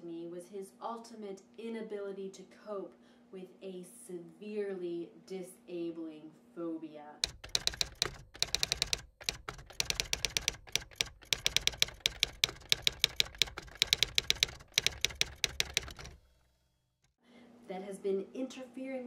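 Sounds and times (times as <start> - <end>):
typewriter keys clacking: 7.2 - 16.2.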